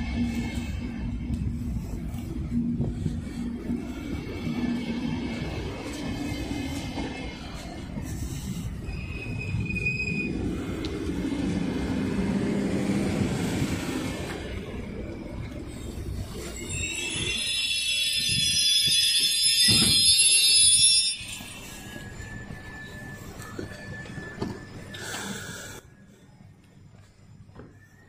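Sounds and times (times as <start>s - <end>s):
train carriages rumbling past: 0.0s - 26.6s
high multi-tone brake squeal: 4.6s - 10.8s, 13.1s - 26.2s.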